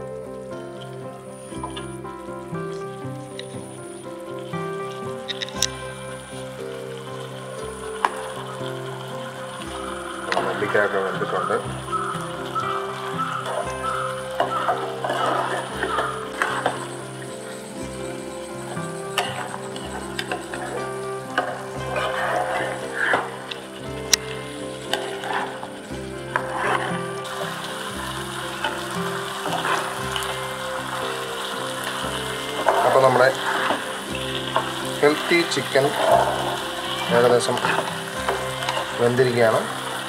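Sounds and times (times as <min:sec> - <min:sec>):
background music: 0:00.0 - 0:40.0
curry sizzling in a pan: 0:00.0 - 0:40.0
gravy bubbling: 0:00.0 - 0:40.0.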